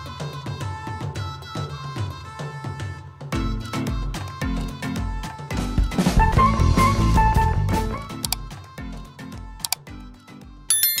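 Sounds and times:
bright bell chime: 10.7 - 11.0.

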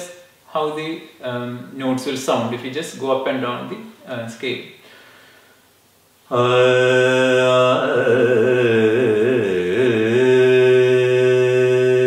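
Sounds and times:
man singing unaccompanied: 6.3 - 12.0.

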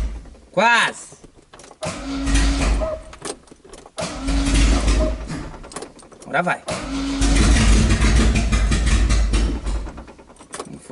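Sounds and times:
starter cranking engine: 1.2 - 10.9.

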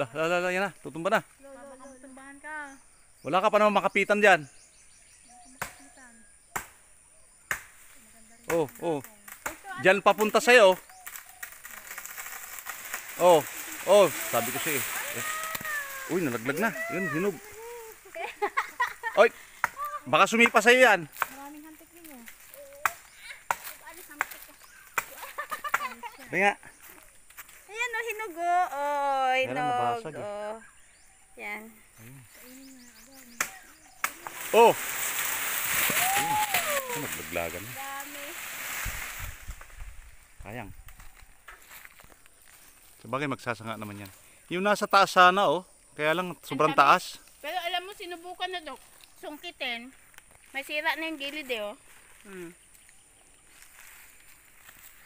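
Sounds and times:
leaves rustling: 5.5 - 55.0
twigs cracking: 7.5 - 28.2, 32.8 - 43.1, 47.2 - 55.0.

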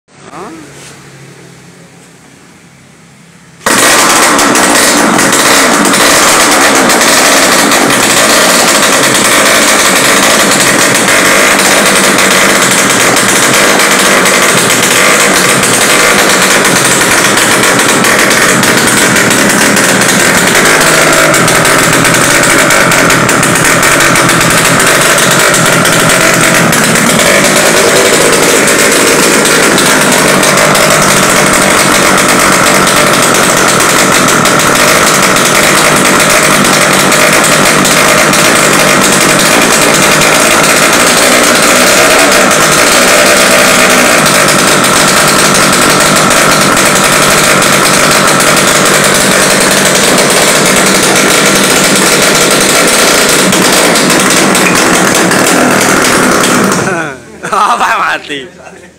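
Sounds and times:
two-stroke engine running loud: 0.3 - 1.8, 3.4 - 58.4.

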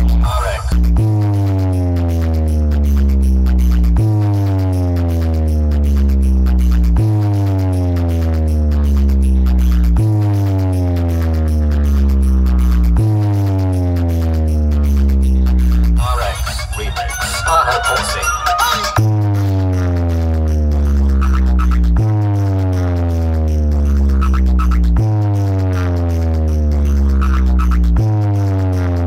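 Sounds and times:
bass-heavy electronic music: 0.0 - 29.0.

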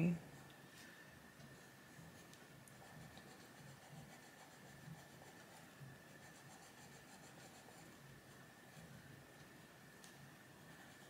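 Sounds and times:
coloured pencil scratching on paper: 1.5 - 8.0, 10.6 - 11.0.

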